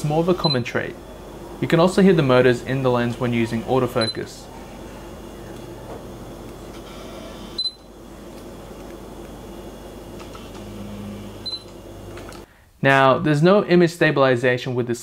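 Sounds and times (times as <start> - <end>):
autofocus motor whirring: 1.0 - 12.4.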